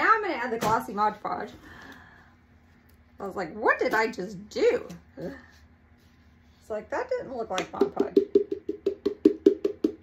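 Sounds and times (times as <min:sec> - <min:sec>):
palm slapping plastic jar: 0:07.6 - 0:10.0.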